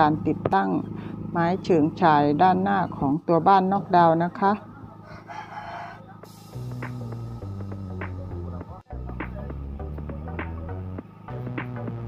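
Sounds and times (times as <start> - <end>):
rooster crowing: 4.9 - 6.4
background music with steady bass: 4.9 - 12.0.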